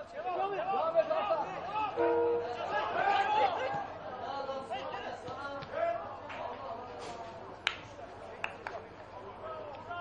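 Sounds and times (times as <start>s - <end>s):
distant players' voices: 1.0s - 10.0s.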